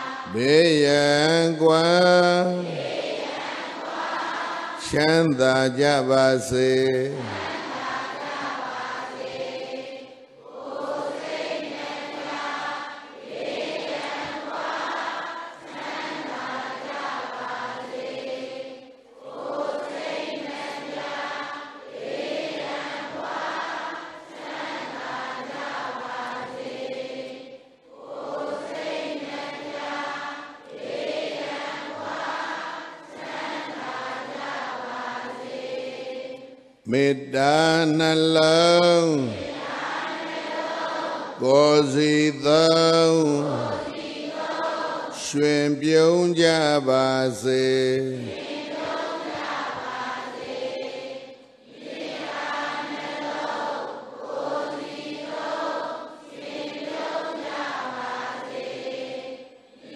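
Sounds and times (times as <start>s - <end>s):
congregation chanting in unison: 0.0s - 59.9s
man chanting: 0.3s - 2.8s, 4.8s - 7.4s, 36.9s - 39.5s, 41.4s - 43.9s, 45.2s - 48.4s.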